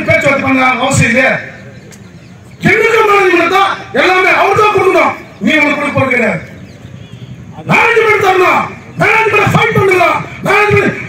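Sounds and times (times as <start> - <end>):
man speaking over loudspeaker: 0.0 - 1.8, 2.6 - 6.6, 7.5 - 11.0.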